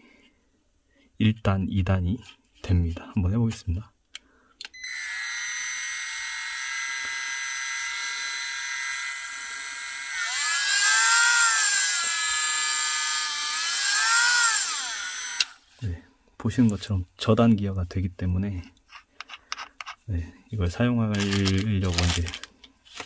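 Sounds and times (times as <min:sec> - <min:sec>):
rotary tool whining: 0:04.8 - 0:15.7.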